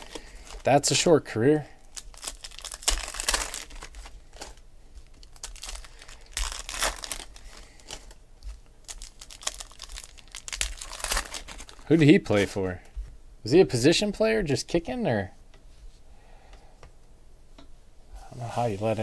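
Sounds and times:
foil wrappers crinkling and tearing: 0.0s - 1.1s, 1.8s - 12.5s
card handling: 1.9s - 12.5s.

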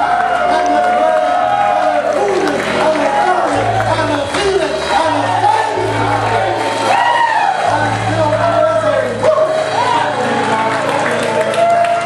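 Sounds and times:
live worship band playing: 0.0s - 12.0s.

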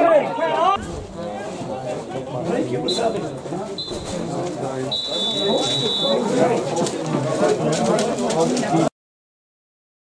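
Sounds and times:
voices of players and spectators: 0.0s - 8.9s
referee's whistle blast: 3.8s - 4.1s, 4.9s - 6.2s.

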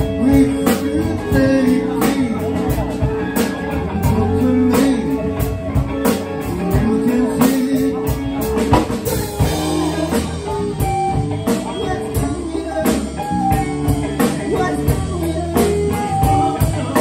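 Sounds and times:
live soul band playing: 0.0s - 17.0s.

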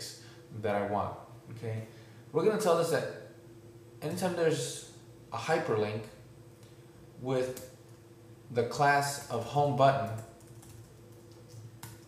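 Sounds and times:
typing on computer keyboard: 10.0s - 12.0s.

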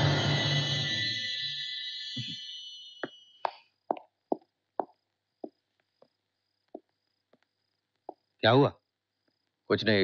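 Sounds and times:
footsteps down stairs: 3.0s - 8.3s.

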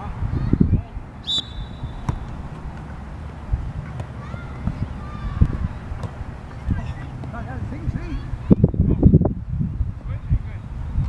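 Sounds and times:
wind rumble on microphone: 0.0s - 11.0s
high whistle blast: 1.2s - 2.1s
ball being kicked: 1.9s - 2.8s, 6.0s - 6.2s.

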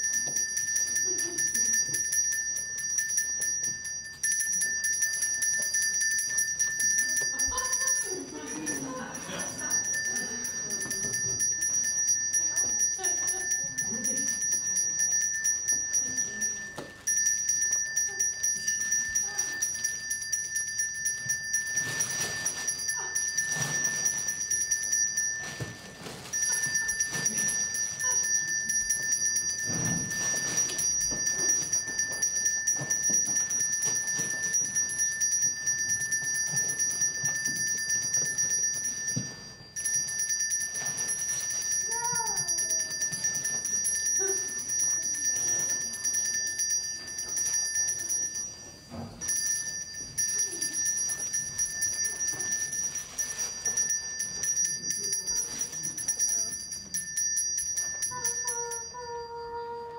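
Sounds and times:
bell ringing: 0.0s - 59.9s.

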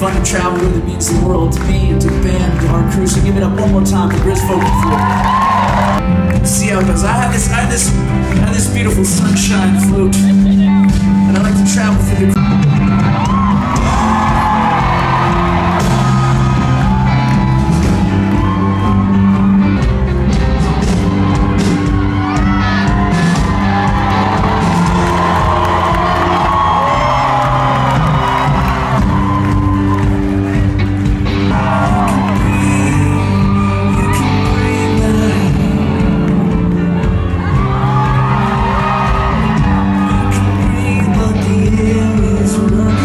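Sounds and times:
fans whooping and cheering: 0.0s - 43.0s
live band music: 0.0s - 43.0s.

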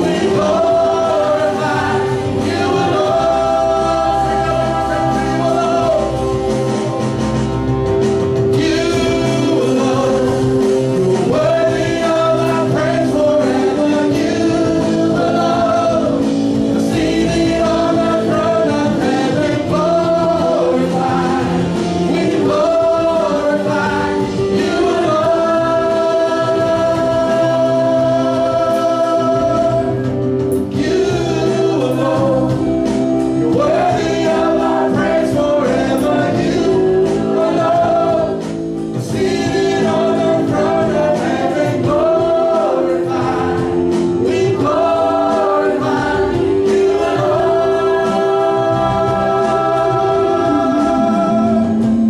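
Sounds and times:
man and woman singing: 0.0s - 6.9s, 8.5s - 52.0s
worship band playing: 0.0s - 52.0s.

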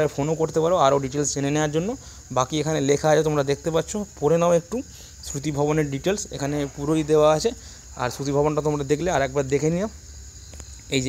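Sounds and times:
man talking: 0.0s - 10.0s
high-pitched whine: 5.3s - 11.0s.

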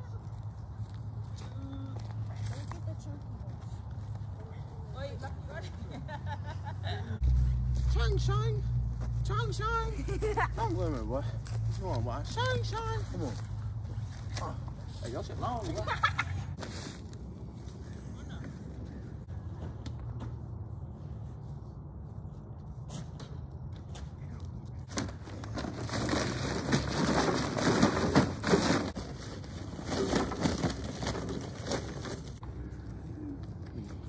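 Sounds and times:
low outdoor rumble: 0.0s - 34.0s.

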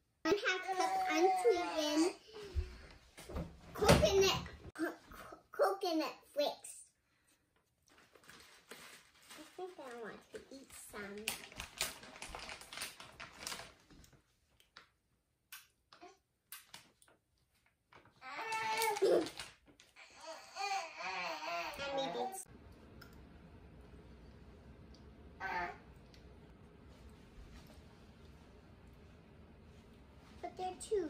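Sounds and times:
young child's voice: 0.3s - 2.8s, 3.8s - 6.9s, 9.3s - 11.5s, 20.1s - 22.5s, 30.4s - 31.0s
plastic bag crinkling: 7.9s - 14.2s, 18.0s - 20.0s
low steady hum: 22.5s - 30.8s.

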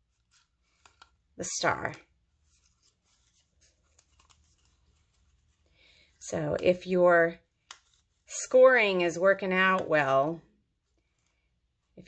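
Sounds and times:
cardstock rustling and ticking: 0.0s - 1.3s, 1.9s - 5.7s, 7.6s - 8.3s.

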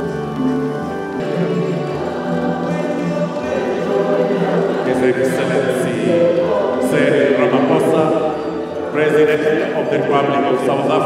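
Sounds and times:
choir singing long notes: 0.0s - 11.0s.

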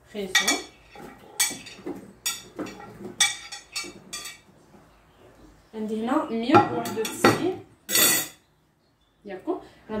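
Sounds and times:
metal kitchenware clinking: 0.3s - 4.5s, 6.6s - 8.5s.

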